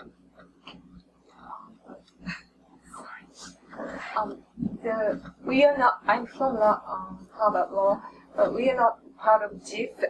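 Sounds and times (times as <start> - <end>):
whispered speech: 0.0 - 10.0
person talking: 1.4 - 10.0.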